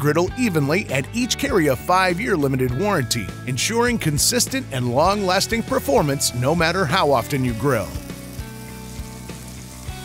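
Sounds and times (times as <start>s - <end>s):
soft background music: 0.0s - 10.0s
food sizzling on a griddle: 6.0s - 10.0s.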